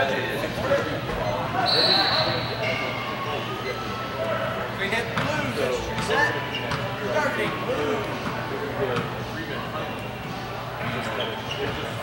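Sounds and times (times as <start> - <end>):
indistinct voices in echoing hall: 0.0 - 12.0.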